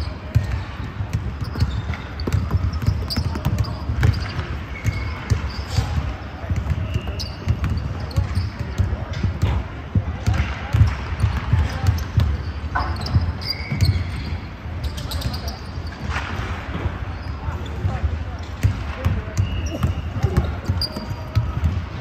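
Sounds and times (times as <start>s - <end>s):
sneaker squeaks: 0.0s - 9.5s, 10.3s - 22.0s
basketball bouncing on wooden floor: 0.3s - 6.0s.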